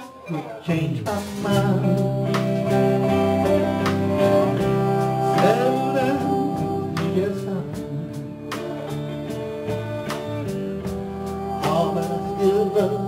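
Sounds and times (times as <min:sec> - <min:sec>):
electric guitars: 0:00.0 - 0:13.0
live rock band playing: 0:00.0 - 0:13.0
drum beat: 0:01.0 - 0:13.0.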